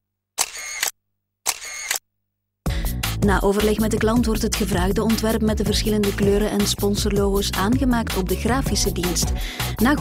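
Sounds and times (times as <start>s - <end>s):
camera shutter clicks: 0.4s - 2.0s.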